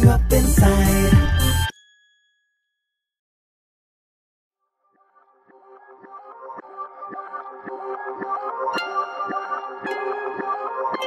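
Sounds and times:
faint ringing bell-like note: 1.4 - 3.1.

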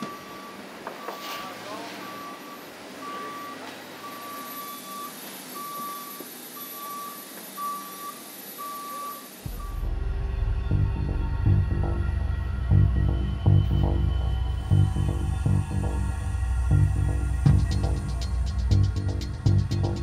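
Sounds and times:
reverse alarm beeping: 0.0 - 20.0
music: 9.5 - 20.0.

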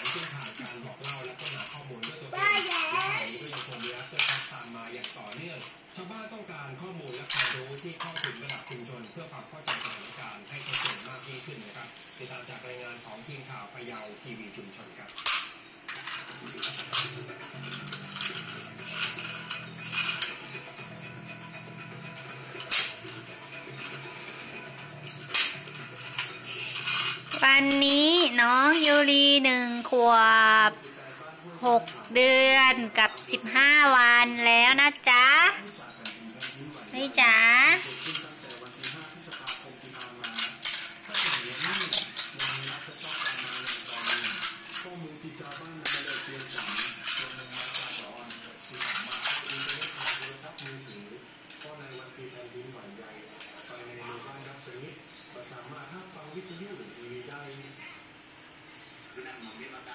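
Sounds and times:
plastic toy car clicking and clattering: 0.0 - 5.8, 7.1 - 8.8, 9.7 - 12.6, 15.1 - 20.5, 25.3 - 27.9, 37.8 - 50.8.

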